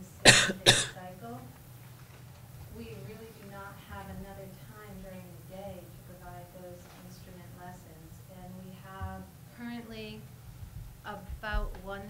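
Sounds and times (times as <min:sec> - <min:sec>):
person coughing: 0:00.2 - 0:01.0.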